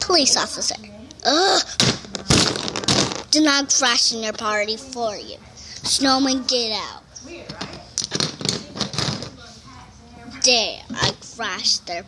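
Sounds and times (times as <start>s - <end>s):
child's voice: 0.0s - 1.8s, 3.3s - 7.1s, 10.3s - 12.0s
toys and phone clattering: 1.8s - 3.3s, 7.5s - 9.4s.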